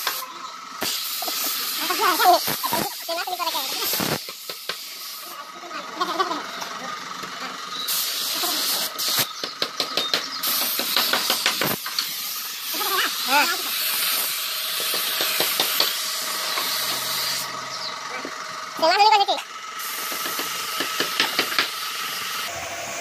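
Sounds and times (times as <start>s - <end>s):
spray gun hissing: 0.8s - 5.4s, 7.9s - 9.3s, 10.4s - 17.5s, 19.8s - 20.4s.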